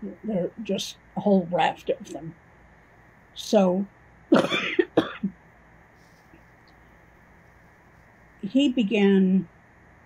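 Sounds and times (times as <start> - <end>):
woman coughing: 4.3 - 5.3.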